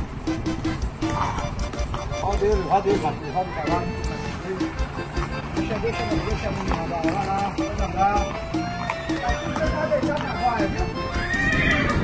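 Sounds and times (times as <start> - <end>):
hooves clopping on pavement: 0.0 - 12.0
horse whinnying: 8.2 - 12.0.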